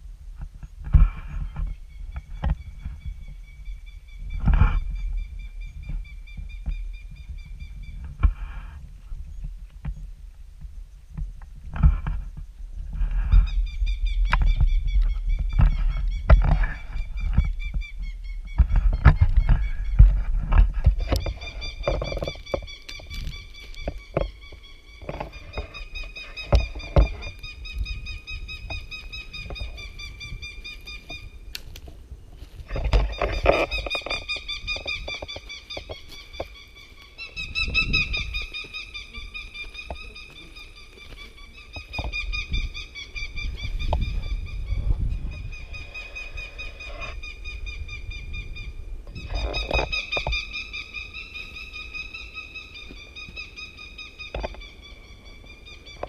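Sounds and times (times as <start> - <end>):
wind rumble: 0.0 - 56.0.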